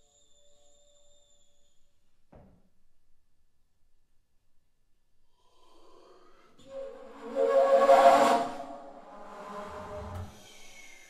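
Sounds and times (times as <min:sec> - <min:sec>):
breathy bass flute note: 0:06.6 - 0:10.5.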